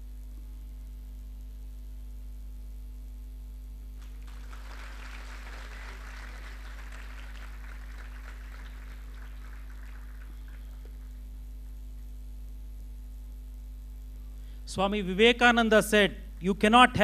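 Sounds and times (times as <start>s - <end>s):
low electrical hum: 0.0s - 17.0s
audience applauding: 4.0s - 11.2s.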